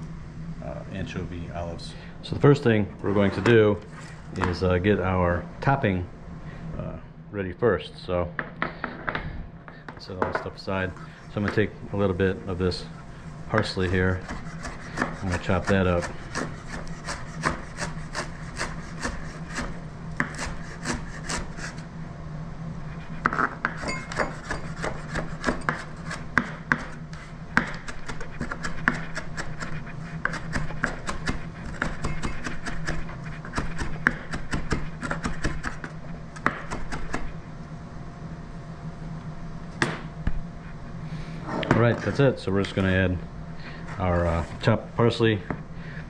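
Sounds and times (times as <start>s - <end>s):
knife chopping on cutting board: 13.6s - 21.5s, 23.3s - 27.0s, 27.6s - 37.3s.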